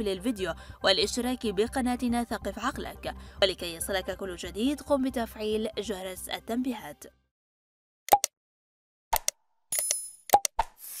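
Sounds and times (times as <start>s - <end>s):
button clicks: 8.1s - 8.3s.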